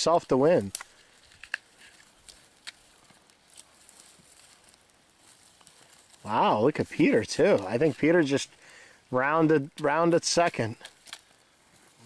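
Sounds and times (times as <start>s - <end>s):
twigs crackling in small fires: 0.0s - 12.0s.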